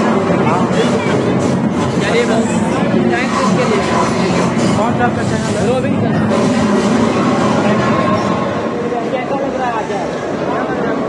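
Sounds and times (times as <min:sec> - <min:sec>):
game machine sounds: 0:00.0 - 0:08.7
crowd noise: 0:00.0 - 0:11.0.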